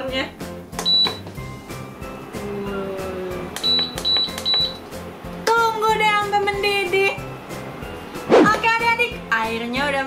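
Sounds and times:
cooktop control panel beeping: 3.6 - 4.8.

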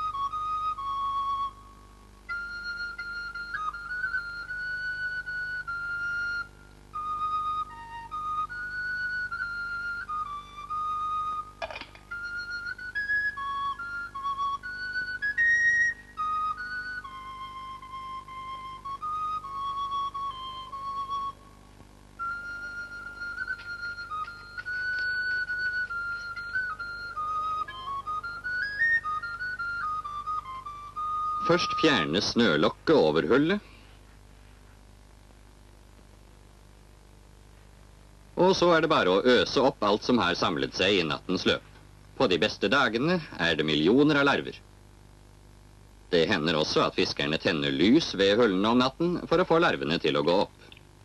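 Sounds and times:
solo flute slow melody: 0.0 - 32.6.

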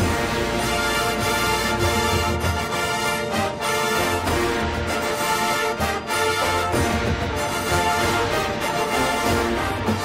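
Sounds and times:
marching band playing chords: 0.0 - 10.0.

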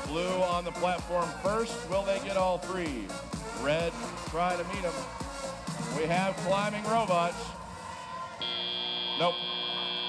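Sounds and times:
electronic buzzer tone: 8.4 - 10.0.

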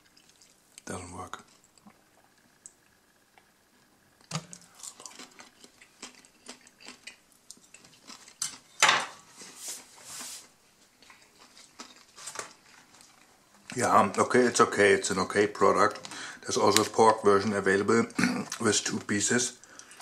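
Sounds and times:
crunchy chewing: 4.5 - 8.8, 11.0 - 13.4.

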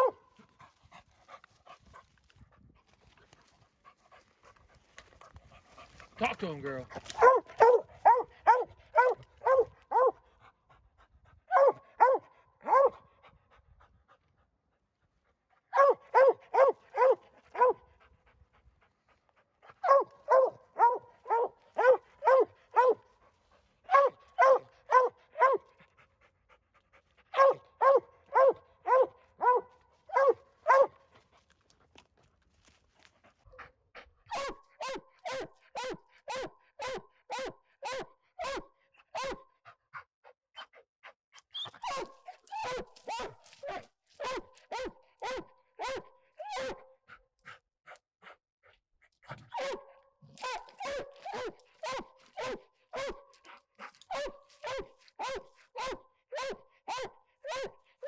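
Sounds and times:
dog barking in bursts: 0.0 - 0.2, 7.1 - 10.2, 11.5 - 13.0, 15.7 - 17.8, 19.8 - 23.1, 23.9 - 25.7, 27.3 - 31.0, 34.3 - 39.5, 41.8 - 46.9, 49.5 - 57.8.

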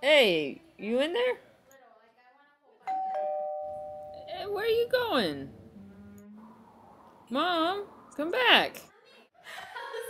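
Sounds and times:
two-note doorbell chime: 2.9 - 4.5.

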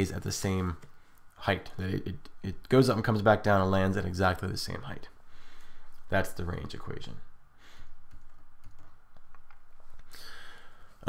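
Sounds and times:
computer keys clicking: 8.0 - 10.1.

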